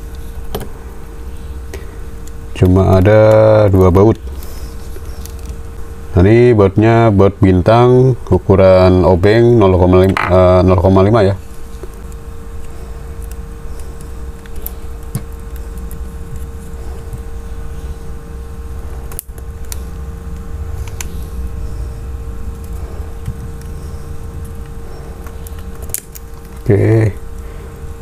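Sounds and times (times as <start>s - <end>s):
constant tone: 0.0s - 28.0s
low background hum: 0.0s - 28.0s.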